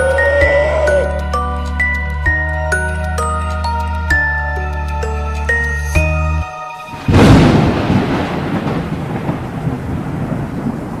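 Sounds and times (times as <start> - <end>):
steady rain: 6.9 - 11.0
thunderclap rumbling: 6.9 - 11.0.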